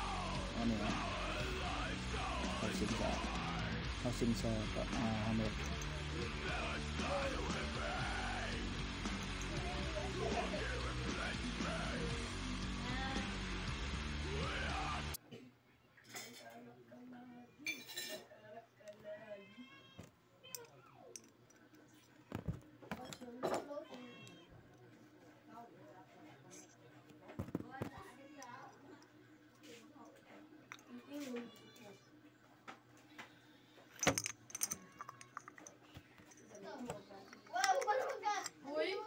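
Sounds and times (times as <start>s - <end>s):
small metal parts clinking: 20.5s - 22.2s, 33.9s - 38.6s.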